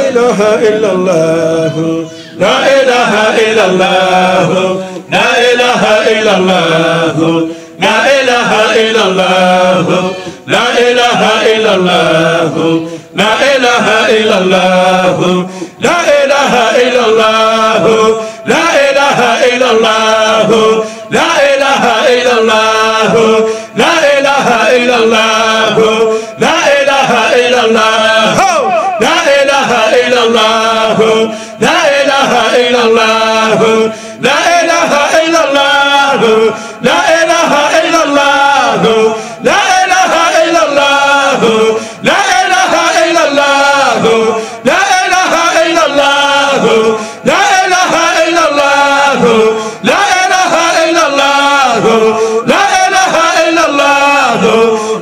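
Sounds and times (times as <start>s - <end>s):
man chanting into microphone: 0.0s - 55.0s.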